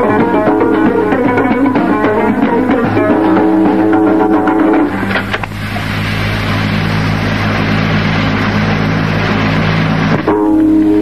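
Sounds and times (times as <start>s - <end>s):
plucked lute music: 0.0s - 5.6s, 10.1s - 11.0s
low hum with hiss: 0.0s - 11.0s.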